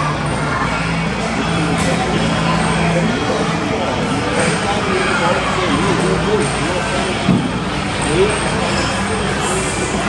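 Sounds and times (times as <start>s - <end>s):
busy indoor play centre din: 0.0s - 10.0s.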